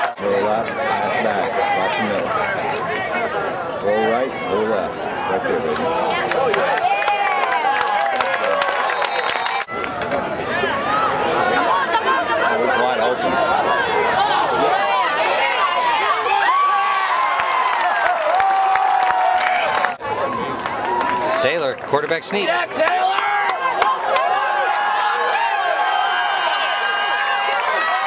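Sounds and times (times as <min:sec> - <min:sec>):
football crowd shouting and cheering: 0:00.0 - 0:28.0.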